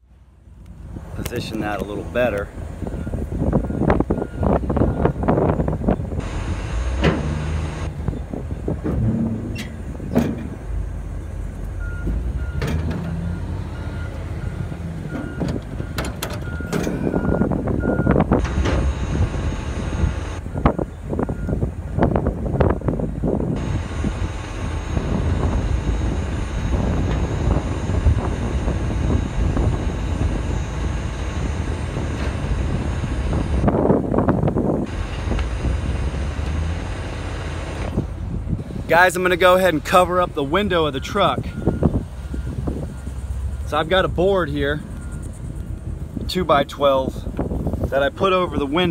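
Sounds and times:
heavy machine engine running: 0.0s - 46.3s
backup alarm beeping: 2.8s - 5.3s, 11.8s - 21.6s, 40.6s - 45.8s
knocks and clatter: 8.8s - 10.6s.

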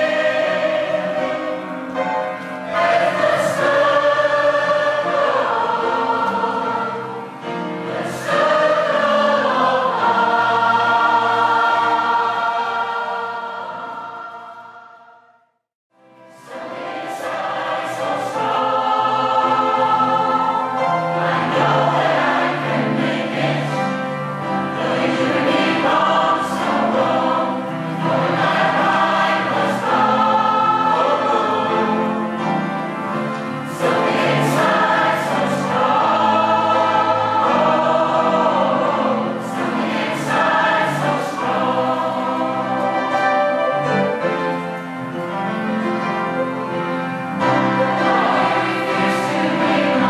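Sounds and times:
choir singing in harmony: 0.0s - 50.0s.

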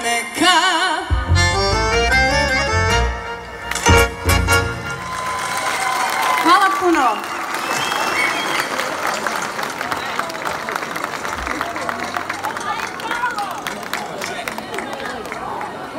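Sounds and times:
live band music: 0.0s - 5.6s
accordion: 1.1s - 5.1s
scattered clapping: 5.1s - 15.8s
crowd voices: 7.8s - 15.9s.

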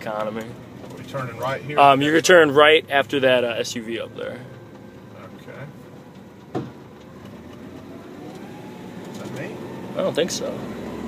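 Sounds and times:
truck engine running low: 0.0s - 11.0s.

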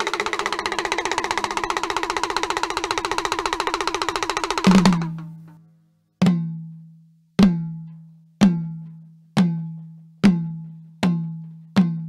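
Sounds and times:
folk instrument tremolo: 0.0s - 5.5s.

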